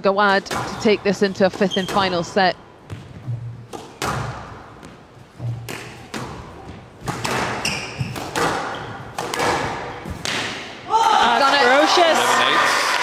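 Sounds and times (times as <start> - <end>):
shoe squeak on court: 1.6 - 2.2, 7.5 - 9.0
squash ball knocks: 2.9 - 10.7.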